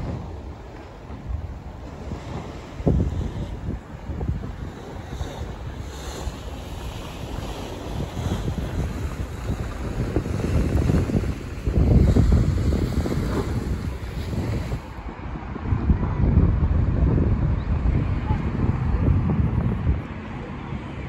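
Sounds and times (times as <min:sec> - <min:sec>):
sea surf washing: 0:00.0 - 0:21.0
wind buffeting microphone: 0:00.0 - 0:21.0.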